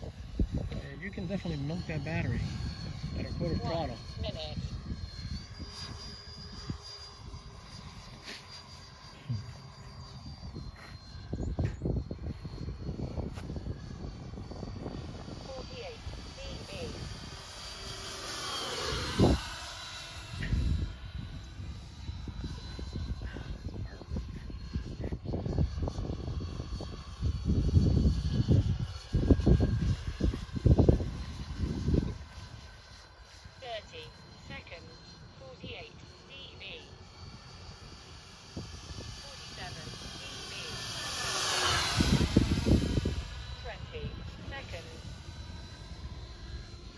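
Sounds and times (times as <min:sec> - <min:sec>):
low gusty rumbling: 0:00.0 - 0:08.0, 0:09.3 - 0:32.8, 0:33.6 - 0:46.9
electric ducted fans whining: 0:00.0 - 0:46.9.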